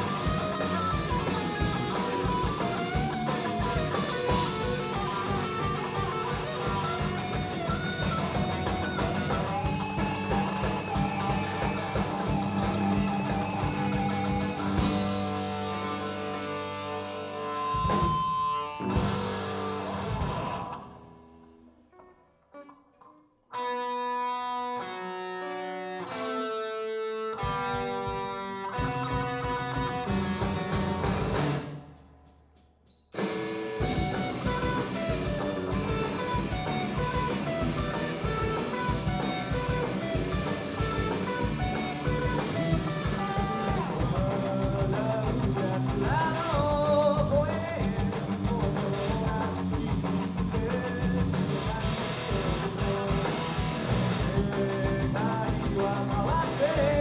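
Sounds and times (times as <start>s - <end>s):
live rock band playing: 0.0s - 22.8s, 23.5s - 32.0s, 33.1s - 57.0s.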